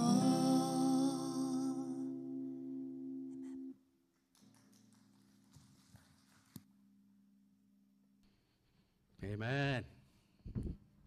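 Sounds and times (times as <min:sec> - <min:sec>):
acoustic guitar chord ringing: 0:00.0 - 0:03.8.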